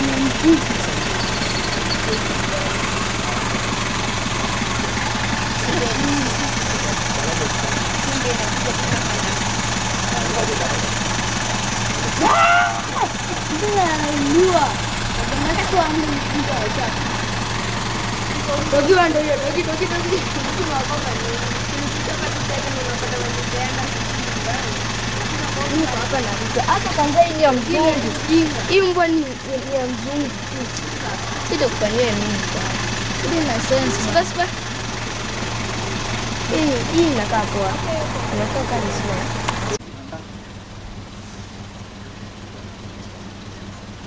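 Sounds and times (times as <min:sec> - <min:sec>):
people talking: 0:00.0 - 0:03.8, 0:04.4 - 0:11.2, 0:11.8 - 0:17.0, 0:18.3 - 0:34.6, 0:36.4 - 0:40.4
high-pitched call: 0:12.2 - 0:13.2.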